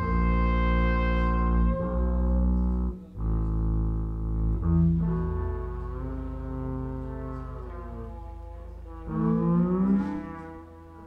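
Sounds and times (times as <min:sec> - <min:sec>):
double bass: 0:00.0 - 0:11.0
horns holding long notes: 0:00.0 - 0:11.0.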